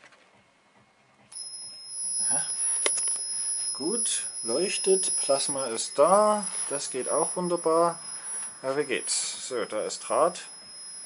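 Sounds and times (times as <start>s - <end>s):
high-pitched two-tone whine: 1.3s - 11.0s.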